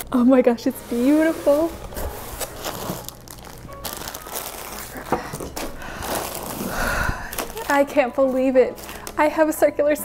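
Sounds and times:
plastic bags crinkling: 1.8s - 9.5s.

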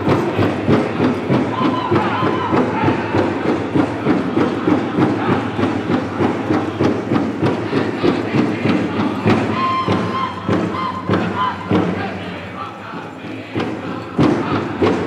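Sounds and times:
group of singers: 0.0s - 15.0s
large drum beaten fast: 0.0s - 15.0s.

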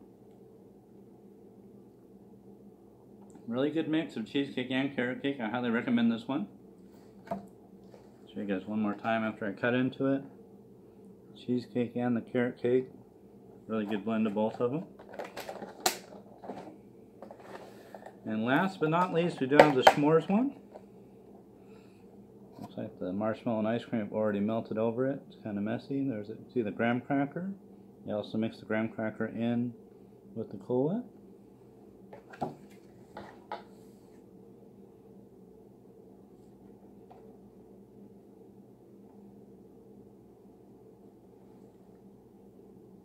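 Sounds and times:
low steady hum: 0.0s - 43.0s
plastic container snap: 15.2s - 16.1s, 19.6s - 20.1s.

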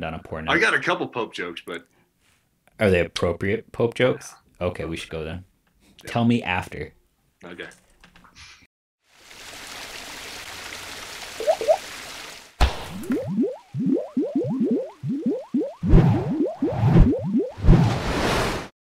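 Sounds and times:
bubbly rising pitch sweeps: 11.4s - 11.8s, 13.0s - 17.9s.

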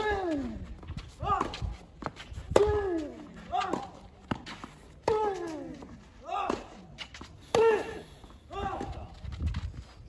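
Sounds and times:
footsteps scuffing on clay: 0.0s - 10.0s.

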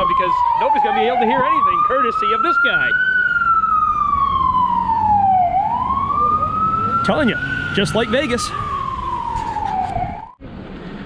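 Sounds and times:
fire truck siren wailing: 0.0s - 10.5s.

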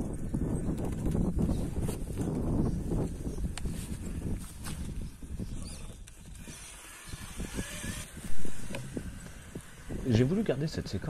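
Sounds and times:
toy car motor running: 5.5s - 10.4s.

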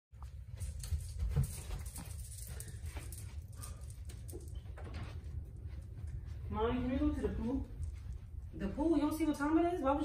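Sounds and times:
footsteps on carpet: 0.2s - 9.7s
steady low rumble: 0.2s - 10.0s.

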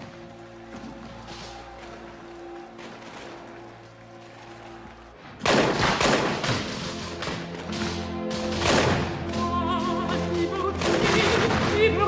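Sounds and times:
soft film score music: 0.0s - 12.0s
musket gunshots: 5.4s - 9.4s.

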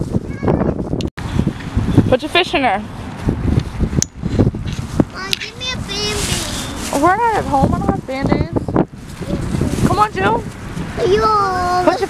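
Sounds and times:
wind buffeting microphone: 0.0s - 12.0s
plastic bag rustling: 5.7s - 7.8s.

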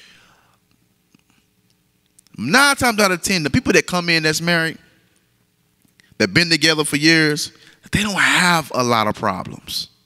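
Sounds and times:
breath into microphone: 0.0s - 0.7s.

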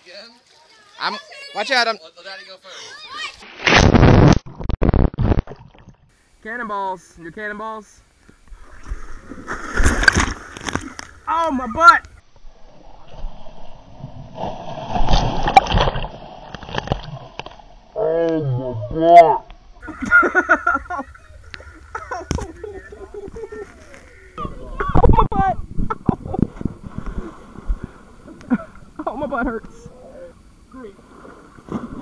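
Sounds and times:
person jumping into water splash: 3.4s - 6.0s, 8.6s - 11.3s, 14.3s - 17.4s, 31.1s - 32.0s
water thumping on camera: 8.3s - 11.3s, 14.9s - 17.6s, 21.0s - 30.0s
pool water churning and sloshing: 8.6s - 11.3s, 26.4s - 32.0s
voices in wavering laughing tones: 19.8s - 26.5s.

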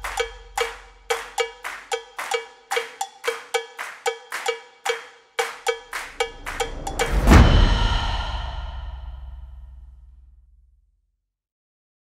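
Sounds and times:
low boom: 6.3s - 10.6s.

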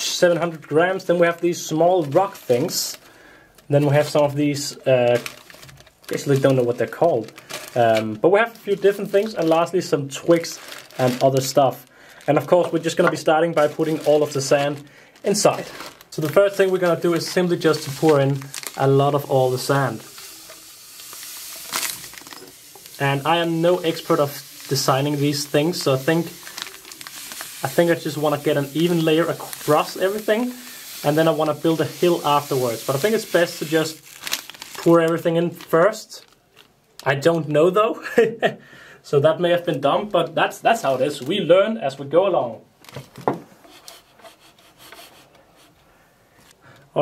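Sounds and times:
sand pouring into glass tank: 13.7s - 35.0s.

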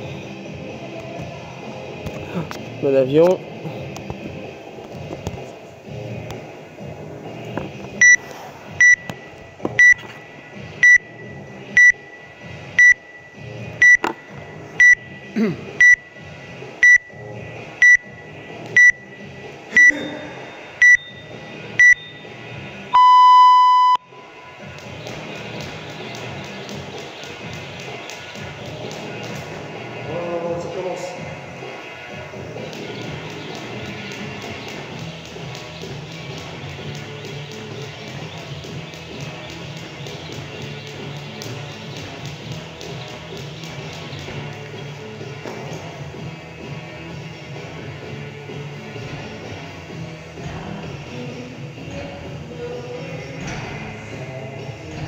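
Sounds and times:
background music: 0.0s - 55.0s
long low timer beep: 8.8s - 9.1s, 9.8s - 10.0s, 10.8s - 14.0s, 14.8s - 15.1s, 15.8s - 16.2s, 16.8s - 17.2s, 17.8s - 18.2s, 18.8s - 19.2s, 20.8s - 22.2s, 22.9s - 24.4s
short high timer beeps: 8.8s - 9.1s, 9.8s - 10.0s, 10.8s - 11.2s, 11.8s - 12.2s, 12.8s - 13.2s, 16.8s - 17.1s, 20.8s - 22.2s, 23.0s - 24.1s.

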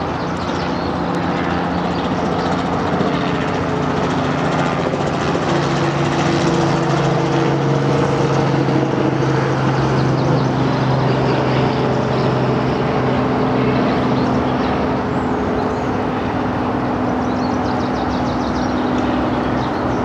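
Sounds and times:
engine drone: 0.0s - 20.0s.

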